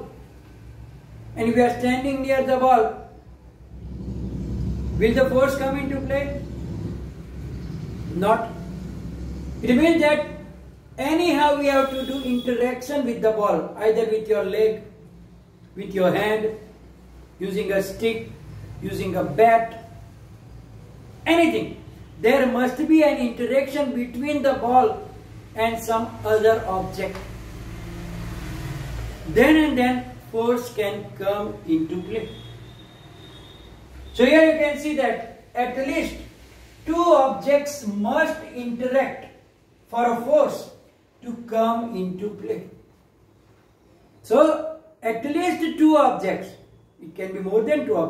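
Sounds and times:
steady low hum: 3.1 - 11.0.

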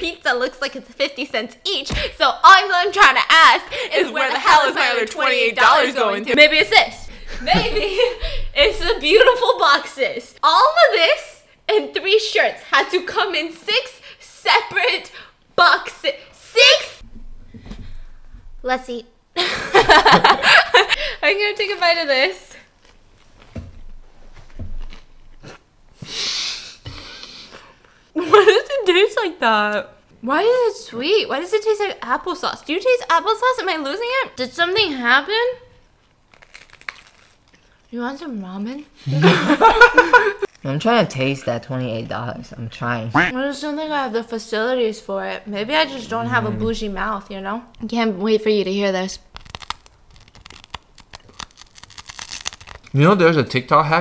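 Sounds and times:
sharp breath out through nose: 26.0 - 27.8
crunchy pizza chewing: 49.3 - 52.9.

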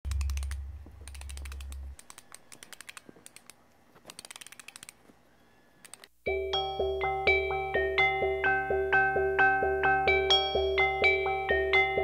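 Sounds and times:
low hum: 0.0 - 2.1
quick mechanical clicks: 0.1 - 5.0.

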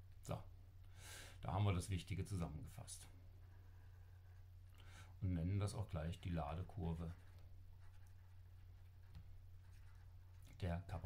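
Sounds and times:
low electrical hum: 0.0 - 11.0
stylus scratching on tablet screen: 6.5 - 11.0.

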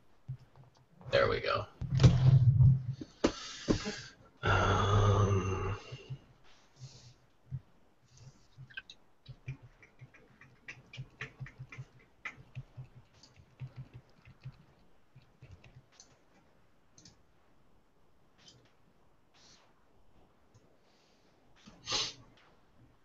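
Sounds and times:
keyboard and mouse clicking: 8.6 - 17.2.

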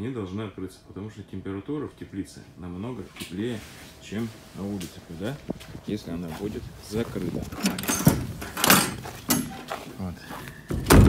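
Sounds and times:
panel shutting with loud thud: 10.8 - 11.0.

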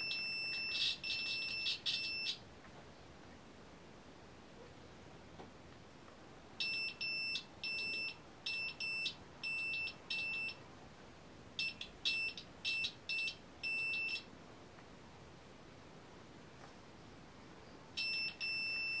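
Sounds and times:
multimeter continuity beeps: 0.0 - 2.4, 6.6 - 10.6, 11.6 - 14.3, 18.0 - 19.0.

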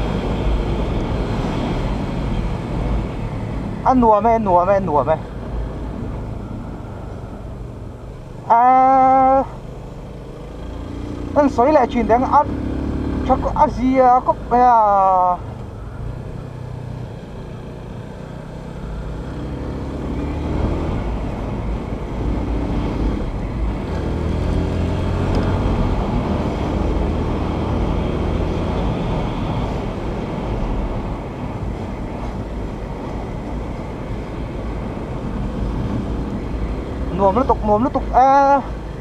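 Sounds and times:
wind and road noise: 0.0 - 39.0
motorcycle engine accelerating: 8.7 - 13.7, 14.8 - 31.0.

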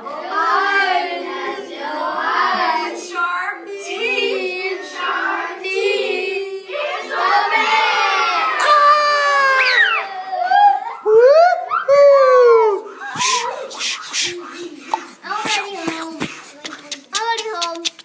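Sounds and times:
children chanting and singing: 0.0 - 8.6, 12.7 - 18.0
child's voice sliding down: 13.1 - 18.0.

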